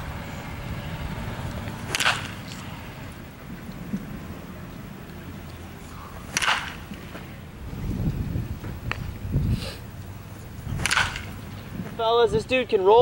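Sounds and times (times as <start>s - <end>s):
baseball bat cracking ball: 1.6s - 2.8s, 6.2s - 7.3s, 10.7s - 11.6s.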